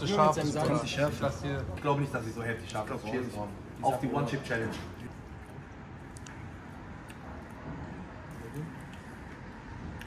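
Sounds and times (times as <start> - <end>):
distant city traffic rumble: 0.0 - 10.0.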